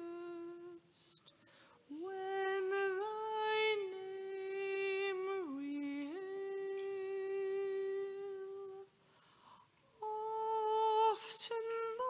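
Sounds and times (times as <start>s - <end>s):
person singing hymn melody: 0.0s - 1.3s, 1.9s - 8.9s, 10.0s - 12.0s.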